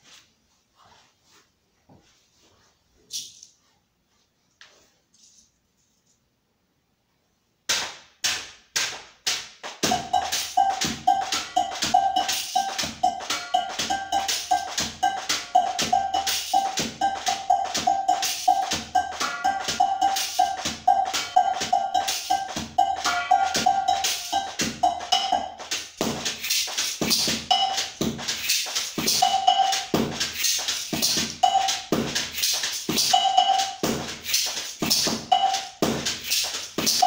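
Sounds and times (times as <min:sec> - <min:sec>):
percussive music: 0:07.7 - 0:37.0.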